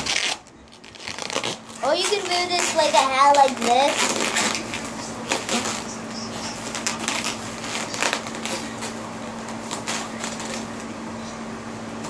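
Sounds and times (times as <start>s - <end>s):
balloon rustling and rubbing: 0.0s - 10.8s
child's voice: 1.8s - 4.1s.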